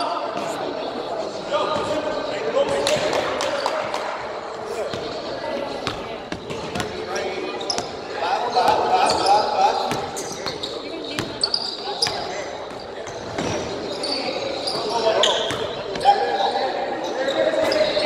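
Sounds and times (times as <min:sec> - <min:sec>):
sneakers squeaking: 0:04.7 - 0:18.0.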